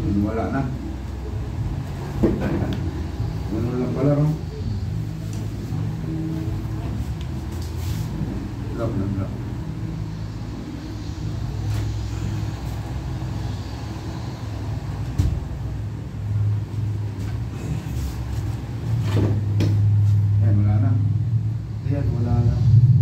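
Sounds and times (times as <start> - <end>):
low mechanical hum: 0.0 - 23.0.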